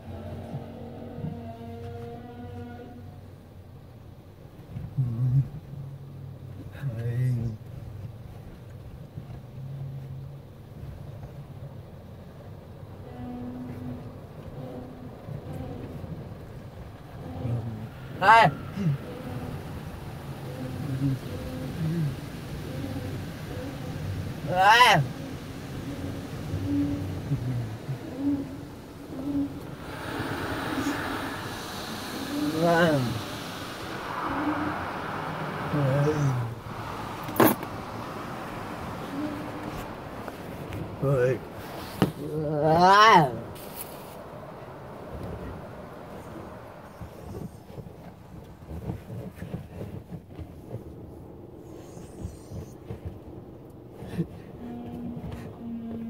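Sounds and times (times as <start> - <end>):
muffled car wash rumble: 0.0 - 56.0
short faint hums: 13.0 - 42.4.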